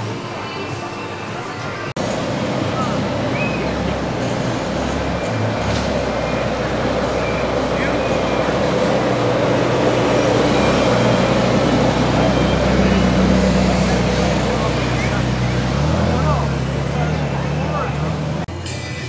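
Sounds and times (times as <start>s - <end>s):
car engine driving slowly past: 2.0s - 18.5s.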